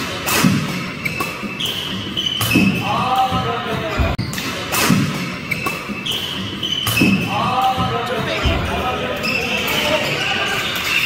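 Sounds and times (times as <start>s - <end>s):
racket hitting shuttlecock: 0.0s - 2.8s, 3.9s - 8.7s
shoes squeaking on court: 0.0s - 11.0s.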